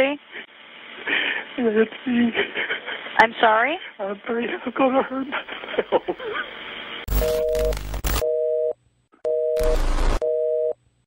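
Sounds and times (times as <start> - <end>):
telephone busy signal beeps: 7.1 - 8.7, 9.3 - 10.8
static hiss bursts: 9.6 - 10.2.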